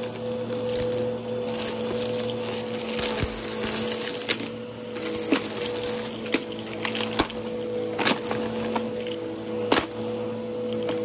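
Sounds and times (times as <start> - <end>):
debris rattling into vacuum: 0.0 - 11.0
upright vacuum humming: 0.0 - 11.0.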